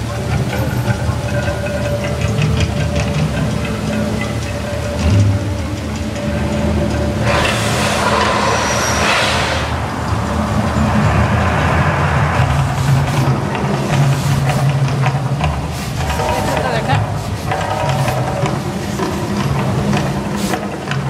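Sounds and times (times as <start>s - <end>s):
deep steady rumble: 0.0s - 21.0s
hissing whoosh of flames: 7.1s - 16.0s.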